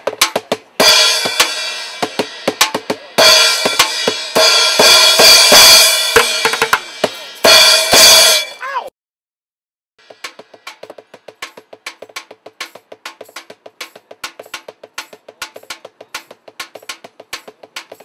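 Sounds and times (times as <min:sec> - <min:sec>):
drumming on plastic buckets: 0:00.0 - 0:04.2, 0:06.2 - 0:07.2, 0:10.0 - 0:18.0
light clicking percussion: 0:10.2 - 0:18.0.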